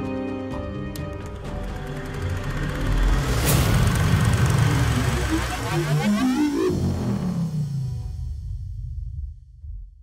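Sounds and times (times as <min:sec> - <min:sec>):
deep rumble: 0:01.6 - 0:10.0
rising electronic tones: 0:02.0 - 0:08.6
rushing whoosh: 0:02.6 - 0:08.4.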